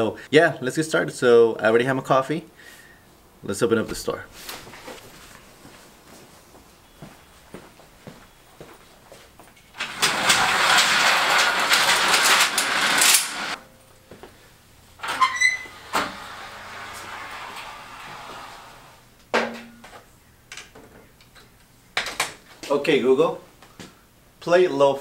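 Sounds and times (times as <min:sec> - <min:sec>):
metal security gate rattling: 0:09.8 - 0:13.6, 0:15.0 - 0:18.8.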